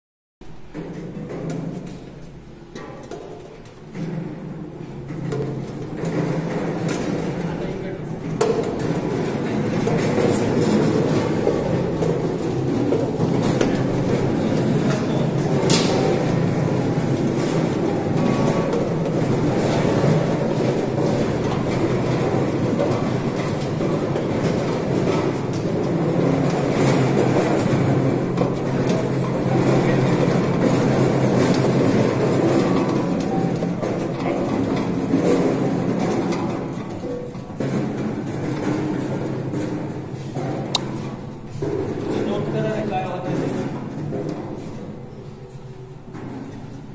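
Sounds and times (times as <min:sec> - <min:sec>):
lemons rattling in rotating drum: 0:00.6 - 0:46.9.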